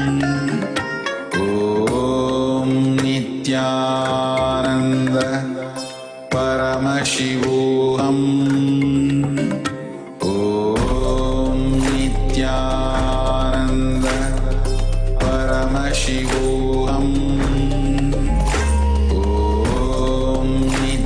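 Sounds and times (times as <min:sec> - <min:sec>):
mantra chanting: 0:00.0 - 0:21.0
musical accompaniment: 0:00.0 - 0:21.0
low drone: 0:10.4 - 0:21.0.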